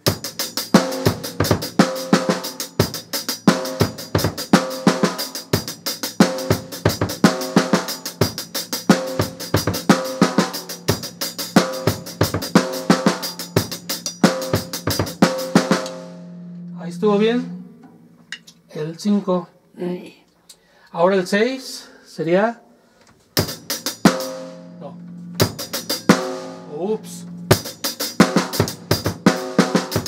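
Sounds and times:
bass drum kicks: 0:25.1 - 0:26.6.

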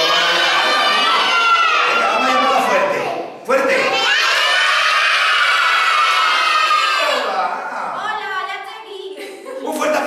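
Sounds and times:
children shouting and cheering: 0:00.0 - 0:07.6.

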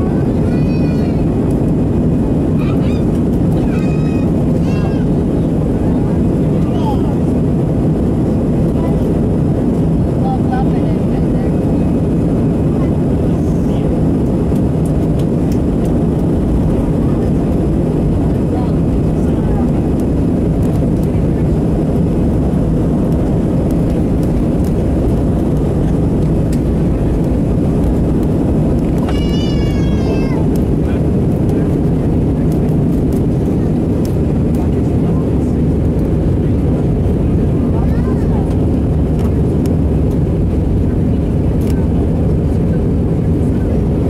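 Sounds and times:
aircraft engine drone inside cabin: 0:00.0 - 0:44.0.

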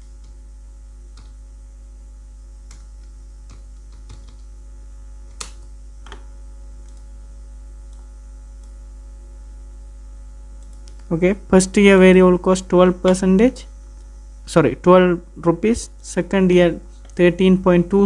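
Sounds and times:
electrical mains hum: 0:00.0 - 0:18.0.

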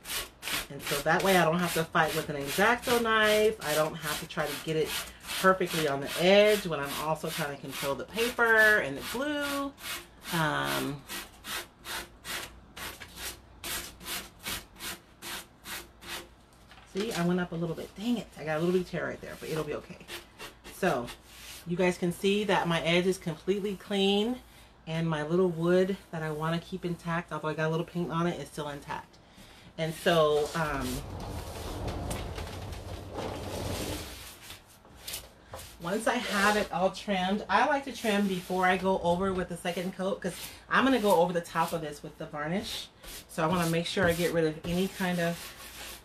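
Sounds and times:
hand sanding wood: 0:00.0 - 0:16.3, 0:29.8 - 0:37.0, 0:37.6 - 0:41.8, 0:42.8 - 0:46.0
sanding block rubbing on wood: 0:43.0 - 0:46.0.

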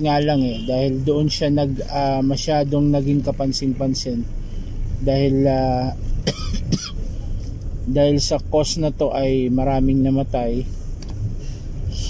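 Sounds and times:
man coughing: 0:06.2 - 0:07.1.

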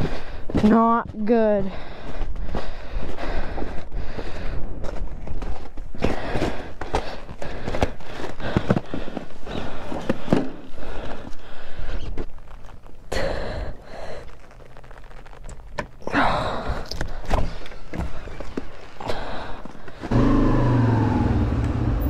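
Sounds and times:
footsteps on icy snow: 0:00.0 - 0:10.2.

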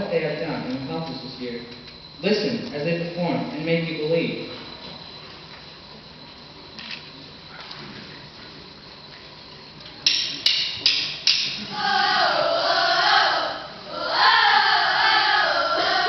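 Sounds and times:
boys singing together: 0:11.3 - 0:16.0.

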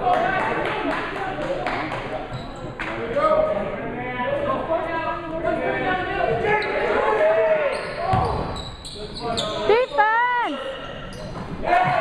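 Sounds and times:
echoing voices in a gymnasium: 0:00.0 - 0:12.0.

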